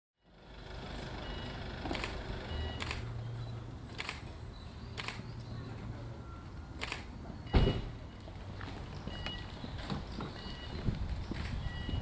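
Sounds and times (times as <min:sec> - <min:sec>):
van engine idling: 0:00.2 - 0:05.1
sharp clicks: 0:03.9 - 0:04.2, 0:04.9 - 0:05.2.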